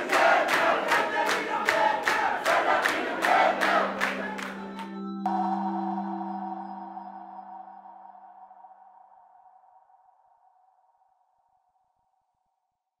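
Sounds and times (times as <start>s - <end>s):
electronic chord ringing: 3.6s - 9.1s.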